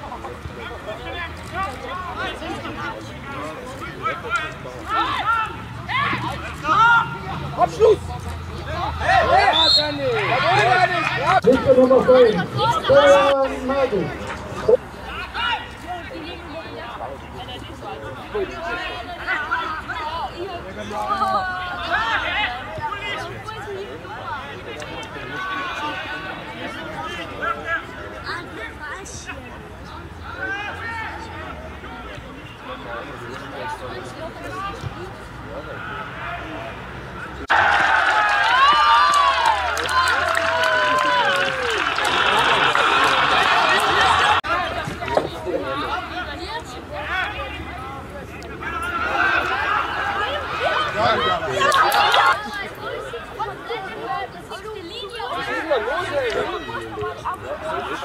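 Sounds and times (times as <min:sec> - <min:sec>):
voices shouting and calling out: 0:00.0 - 0:58.0.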